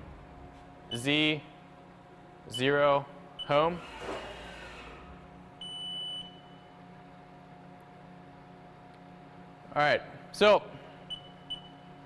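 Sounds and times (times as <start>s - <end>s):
machine steady hum: 0.0s - 12.0s.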